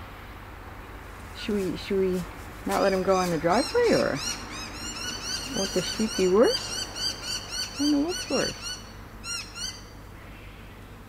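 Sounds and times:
bird calling: 1.3s - 10.9s.

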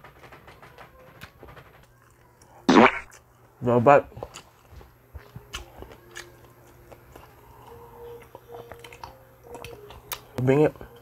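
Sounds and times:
chewing crispy food: 0.5s - 11.0s.

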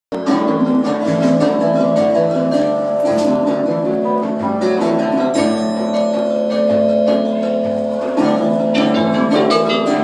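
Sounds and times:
guitar playing: 0.1s - 10.0s
percussion ensemble: 0.1s - 10.0s.

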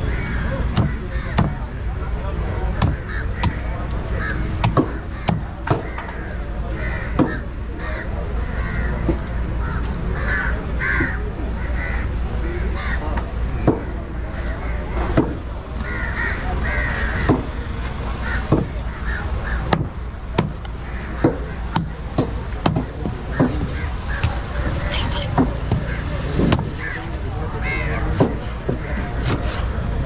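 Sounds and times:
crows cawing: 0.1s - 1.6s, 3.0s - 9.0s, 9.6s - 12.1s, 12.8s - 13.0s, 14.4s - 19.9s, 20.8s - 22.0s, 23.3s - 26.2s, 26.8s - 28.1s.

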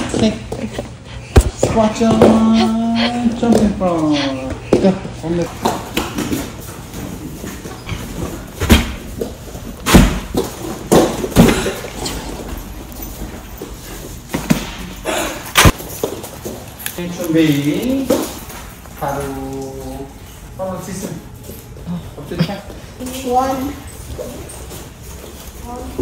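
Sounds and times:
kicks slapping foam pads: 9.8s - 11.8s.

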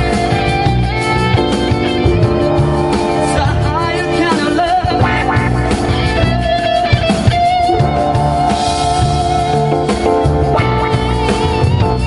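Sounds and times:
electric guitars: 0.0s - 12.0s
live rock band instrumental: 0.0s - 12.0s.

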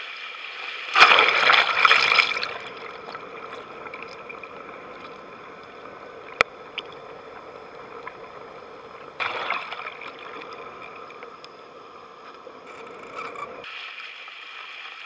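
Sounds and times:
steady multi-tone hum: 0.0s - 14.6s
water rushing: 0.0s - 15.0s.

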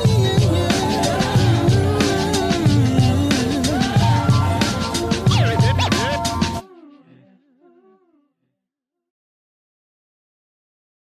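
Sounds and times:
faint wordless vocal: 0.0s - 8.6s.

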